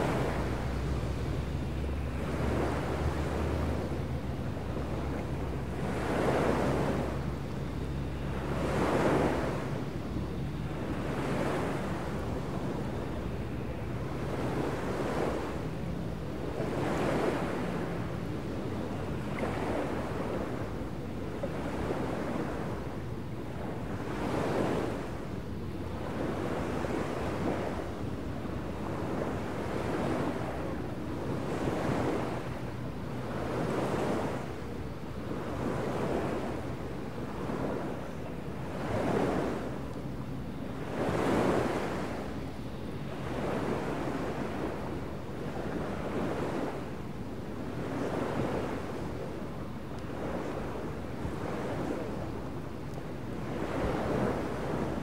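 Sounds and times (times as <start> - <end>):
small waves washing in: 0.0 - 55.0.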